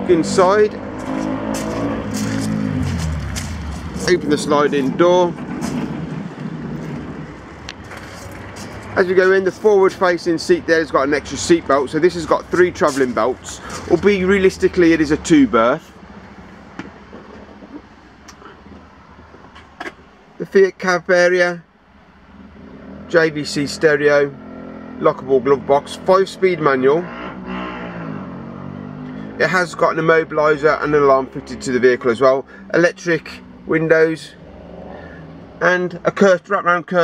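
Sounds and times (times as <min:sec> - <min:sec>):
motor vehicle passing: 0:00.0 - 0:20.4, 0:22.0 - 0:33.7, 0:34.3 - 0:35.6
low rumble: 0:01.0 - 0:09.0.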